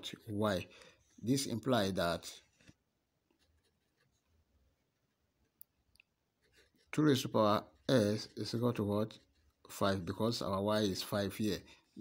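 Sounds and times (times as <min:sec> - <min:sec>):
pen writing on paper: 0:06.4 - 0:07.0.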